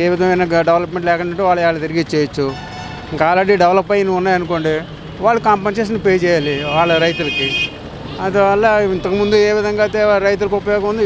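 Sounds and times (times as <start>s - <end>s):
man talking: 0.0s - 11.0s
traffic: 0.0s - 11.0s.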